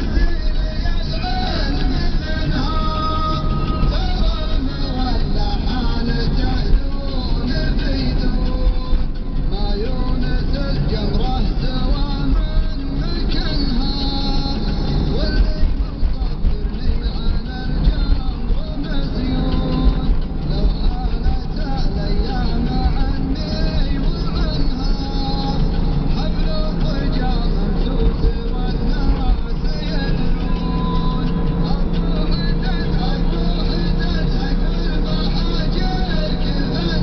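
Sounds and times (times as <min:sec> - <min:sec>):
car road and engine rumble: 0:00.0 - 0:37.0
music with singing voice: 0:00.0 - 0:37.0.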